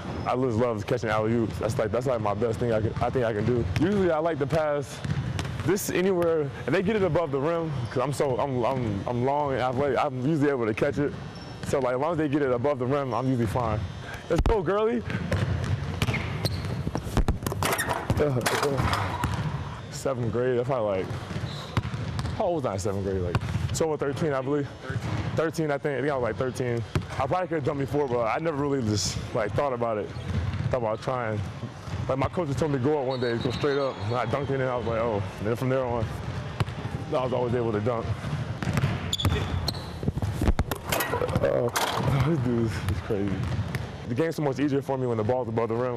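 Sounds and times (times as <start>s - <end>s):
sneakers squeaking: 4.9s - 6.1s, 7.7s - 9.3s, 10.7s - 11.9s, 13.1s - 22.5s, 29.4s - 44.0s
basketball bouncing: 5.0s - 5.7s, 14.4s - 19.6s, 21.0s - 22.5s, 23.2s - 23.7s, 26.8s - 27.2s, 30.1s - 30.8s, 36.5s - 37.0s, 38.0s - 44.0s
basketball bouncing on wooden floor: 15.1s - 18.3s, 21.1s - 22.4s, 38.6s - 39.5s, 43.3s - 43.8s.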